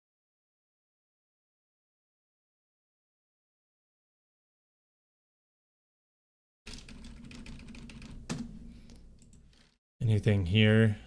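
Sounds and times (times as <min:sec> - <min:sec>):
computer keyboard typing: 0:06.7 - 0:09.7.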